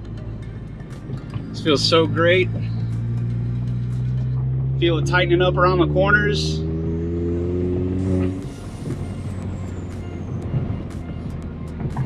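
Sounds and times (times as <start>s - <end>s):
car engine drone: 0.0s - 12.0s
tyre and road noise: 0.0s - 12.0s.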